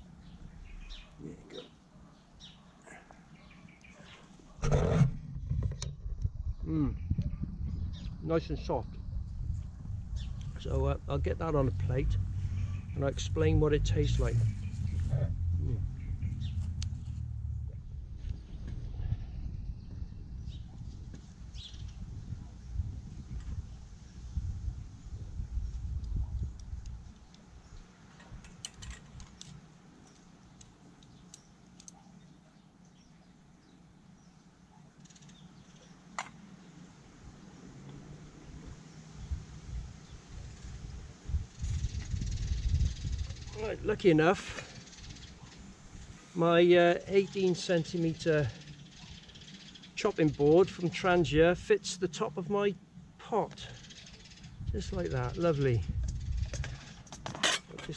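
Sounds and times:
low microphone rumble: 4.6 - 26.8.

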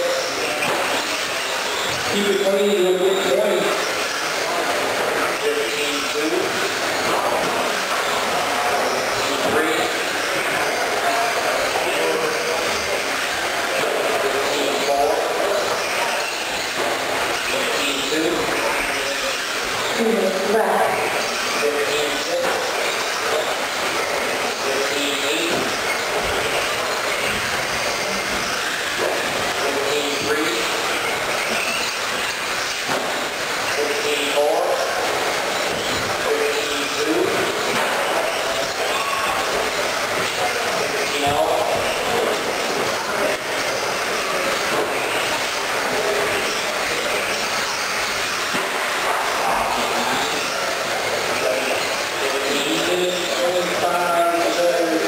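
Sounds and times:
voices in a hall: 0.0 - 55.0.

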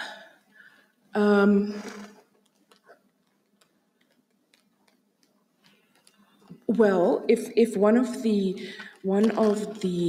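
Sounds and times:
small irregular clicks: 2.1 - 6.6.

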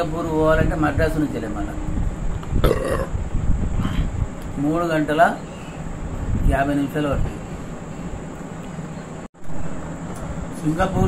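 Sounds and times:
man making throaty noise: 2.6 - 4.2.

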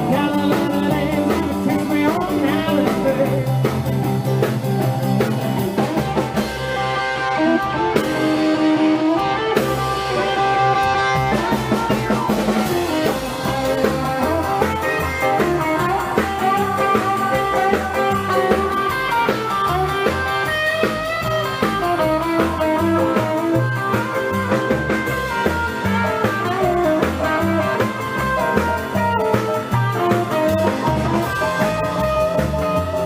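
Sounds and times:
drums: 0.0 - 33.0
electric guitar: 0.0 - 33.0
upright double bass: 0.0 - 33.0.

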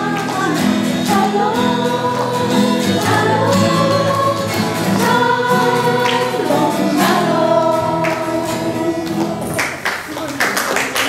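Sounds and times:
group singing in unison: 0.0 - 9.6
strummed acoustic guitars: 0.0 - 10.1.

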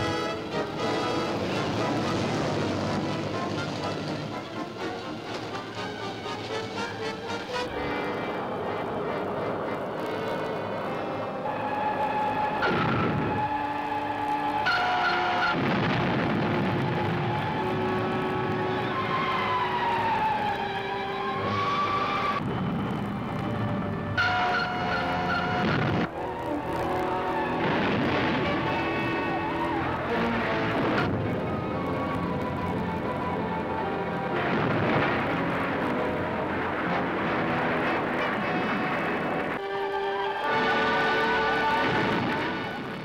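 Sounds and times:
rumbling noise bursts: 0.0 - 39.6, 40.4 - 43.0
dramatic film music: 0.0 - 43.0.

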